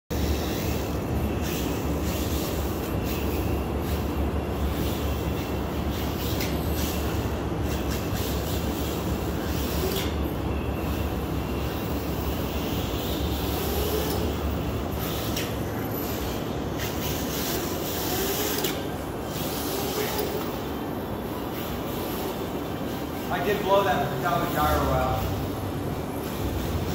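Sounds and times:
faint electric motor whines: 0.1 - 26.9.

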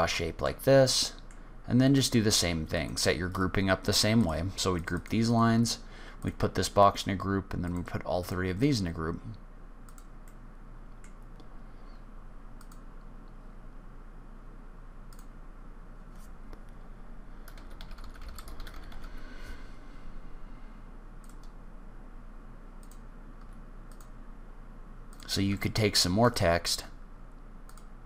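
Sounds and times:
faint low hum: 0.0 - 28.0
computer keyboard typing: 17.4 - 19.2.

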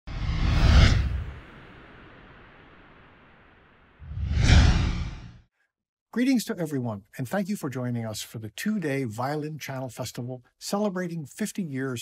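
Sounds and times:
deep rumble: 4.0 - 5.4
whoosh sound effect: 4.0 - 5.4.

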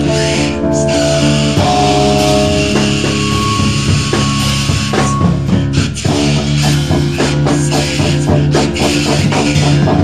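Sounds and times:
bass guitar: 0.0 - 10.0
distorted electric guitar chords: 0.0 - 10.0
drum kit: 0.0 - 10.0.

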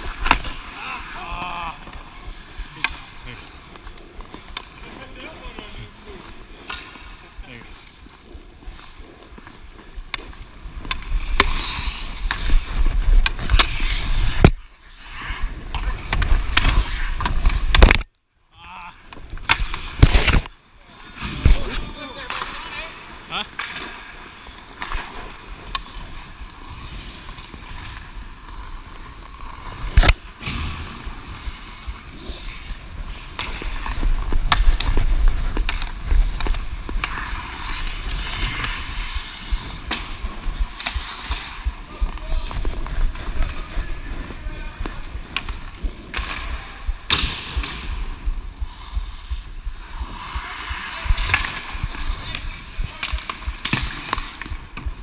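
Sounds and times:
skates scraping on ice: 0.0 - 18.0, 18.9 - 55.0
hockey stick clacks: 33.3 - 42.8, 51.1 - 55.0.

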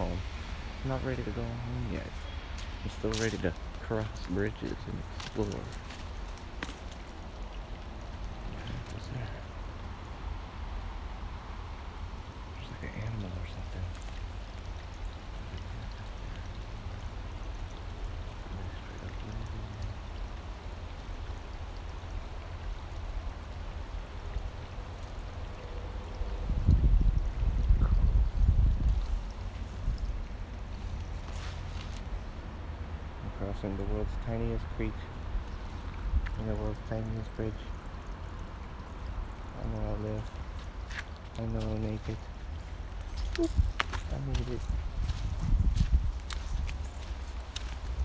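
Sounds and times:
faint creek trickling: 0.0 - 48.0
wind rumble on microphone: 25.8 - 32.4, 34.1 - 37.1, 40.2 - 48.0.

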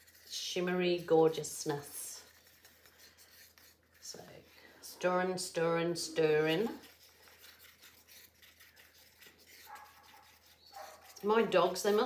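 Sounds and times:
stir stick scraping plastic cup: 0.0 - 12.0.

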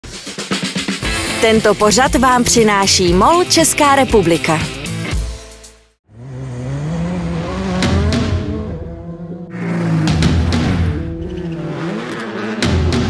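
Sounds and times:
music track: 0.4 - 5.8
race car engines revving: 6.1 - 13.0.

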